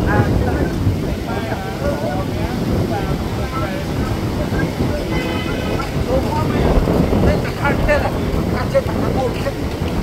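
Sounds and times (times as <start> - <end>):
surf rumble: 0.0 - 10.0
wind on microphone: 0.0 - 10.0.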